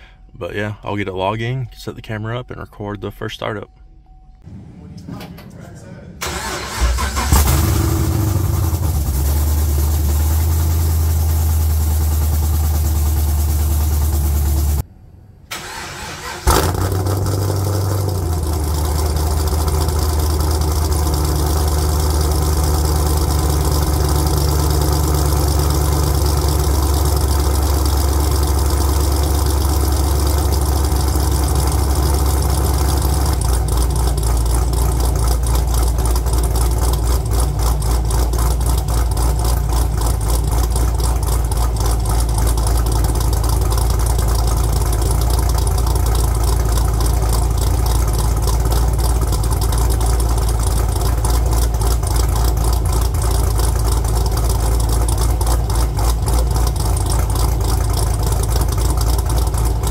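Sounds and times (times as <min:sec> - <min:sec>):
loud engine idling: 0:04.5 - 0:14.8, 0:15.6 - 0:59.9
engine cranking and starting: 0:06.2 - 0:11.4, 0:15.5 - 0:59.9.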